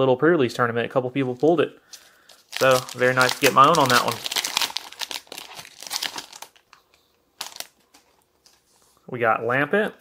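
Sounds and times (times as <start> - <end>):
foil wrapper crinkling: 1.9 - 8.6
cards rustling: 1.9 - 8.7.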